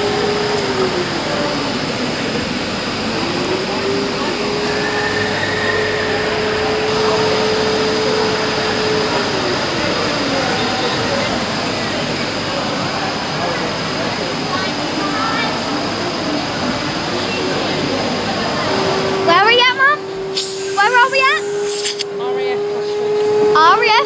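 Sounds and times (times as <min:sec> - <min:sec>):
steady rushing hiss: 0:00.0 - 0:22.2
crowd chatter: 0:00.0 - 0:24.0.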